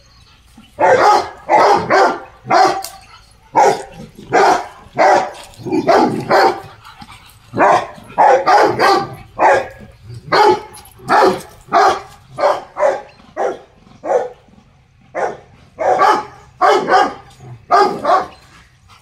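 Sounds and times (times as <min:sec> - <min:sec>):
dogs barking: 0:00.0 - 0:19.0.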